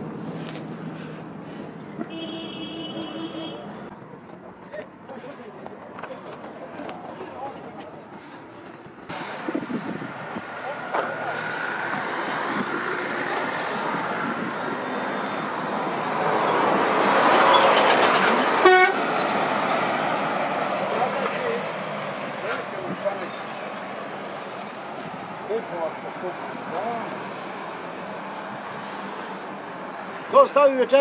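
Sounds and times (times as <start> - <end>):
vehicle passing by: 9.0 - 30.7
horn toot: 18.6 - 19.0.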